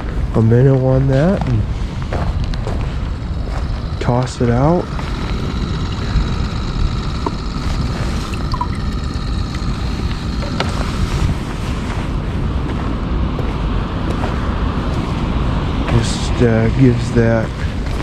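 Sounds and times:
wind buffeting microphone: 0.0s - 18.0s.

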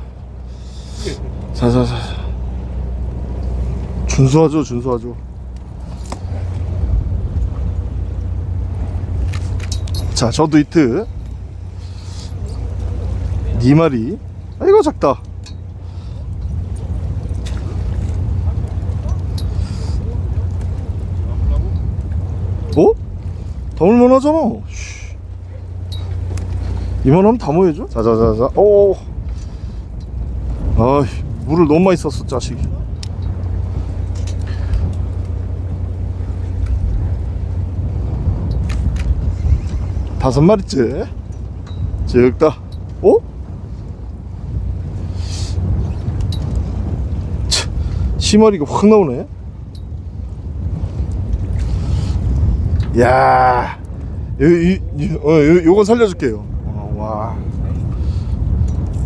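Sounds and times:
boat engine rumbling: 0.0s - 59.0s.

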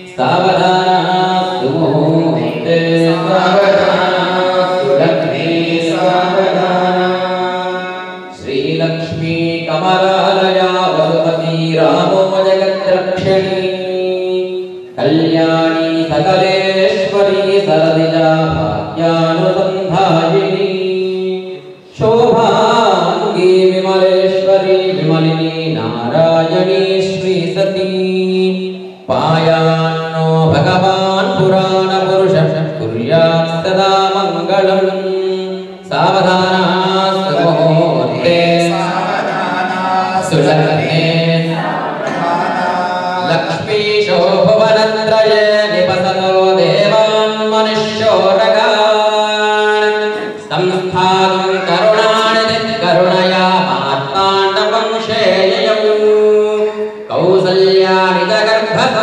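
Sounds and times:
voices chanting together: 0.0s - 8.8s, 36.7s - 44.5s, 49.9s - 53.8s
man chanting long notes: 0.0s - 59.0s.

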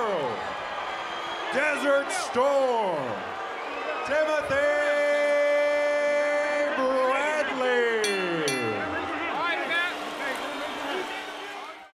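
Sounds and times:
arena crowd noise: 0.0s - 11.9s.

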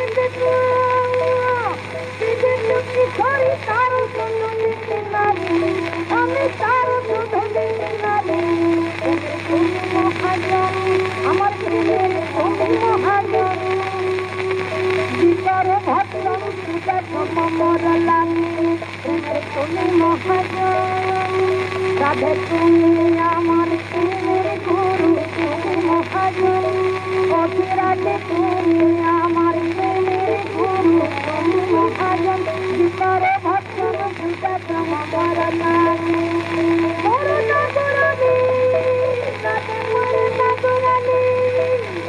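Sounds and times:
devotional song: 0.0s - 42.0s
recording hiss: 0.0s - 42.0s.

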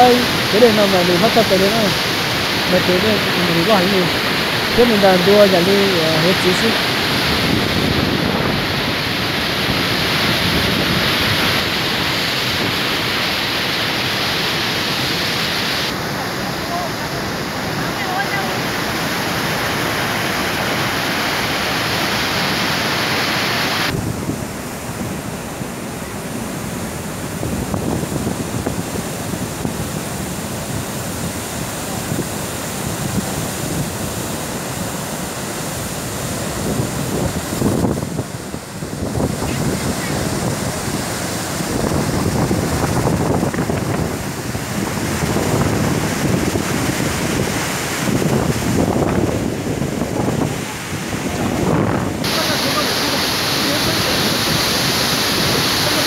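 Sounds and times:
wind buffeting microphone: 0.0s - 12.8s, 27.0s - 34.3s, 36.2s - 52.9s
rushing water and spray: 0.0s - 56.0s.

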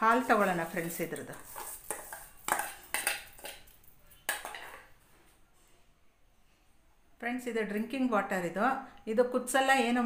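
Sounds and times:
metal spoon clinking on steel bowl: 0.0s - 4.9s.

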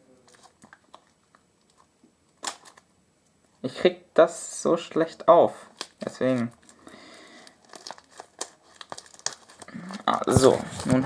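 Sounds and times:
plastic packaging crinkling: 0.2s - 2.9s, 5.6s - 11.0s.

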